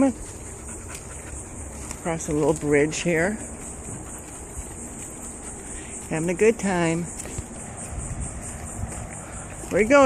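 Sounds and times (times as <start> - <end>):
high insect drone: 0.0 - 10.0
wind rumble on microphone: 7.1 - 10.0.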